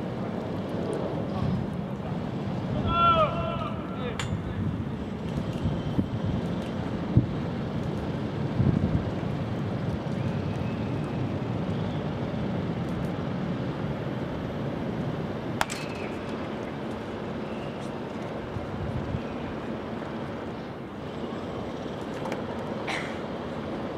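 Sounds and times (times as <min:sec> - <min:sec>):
wind noise on microphone: 0:02.5 - 0:14.0, 0:18.4 - 0:19.6
bat hitting ball crack: 0:15.6 - 0:16.2.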